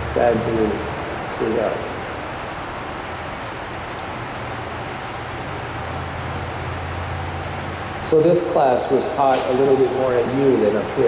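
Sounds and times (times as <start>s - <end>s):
air blowers humming and hissing: 0.0s - 11.0s.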